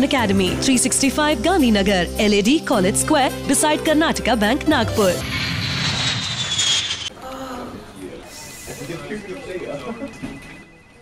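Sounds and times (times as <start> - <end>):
jet aircraft rushing whine: 4.8 - 7.1.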